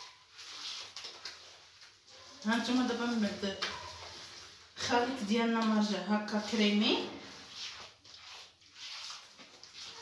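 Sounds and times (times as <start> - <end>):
hands squishing mixture in bowl: 0.0 - 10.0.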